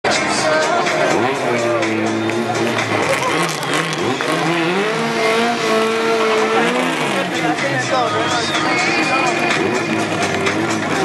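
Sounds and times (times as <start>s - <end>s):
drag racing car engine revving: 0.8s - 11.0s.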